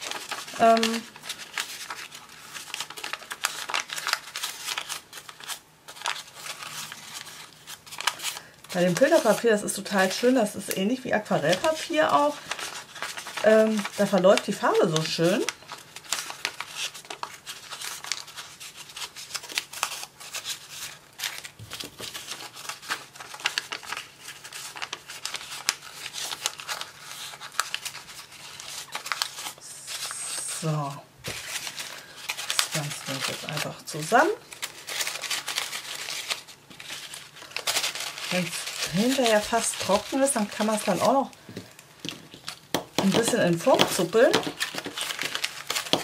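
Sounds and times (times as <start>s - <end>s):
paper crinkling: 0.0s - 46.0s.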